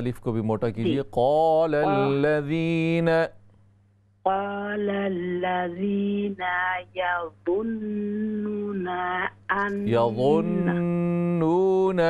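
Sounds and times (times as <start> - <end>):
man chanting recitation: 0.7 - 3.4, 9.7 - 12.0.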